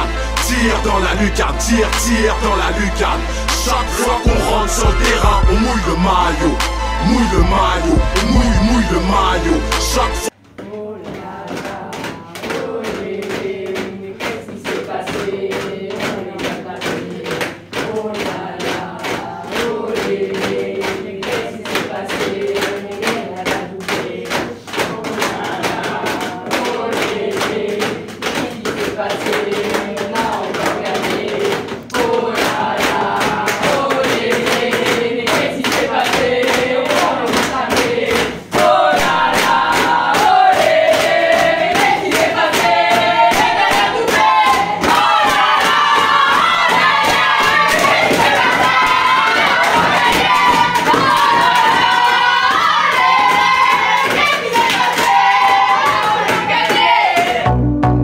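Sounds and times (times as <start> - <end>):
women chanting: 0.0 - 57.4.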